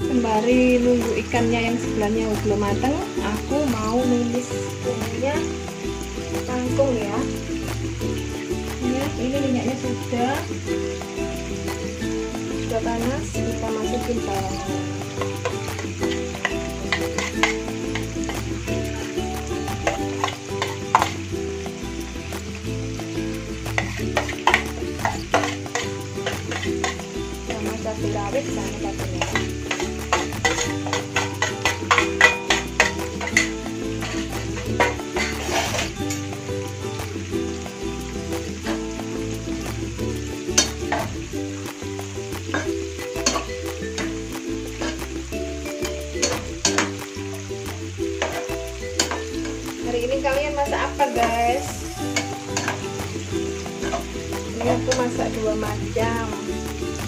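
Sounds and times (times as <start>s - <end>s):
background music: 0.0s - 57.0s
garlic sizzling in hot oil: 0.0s - 57.0s
metal spatula scraping pan: 15.2s - 18.4s, 19.8s - 21.2s, 23.8s - 27.7s, 28.6s - 36.3s, 52.1s - 52.9s.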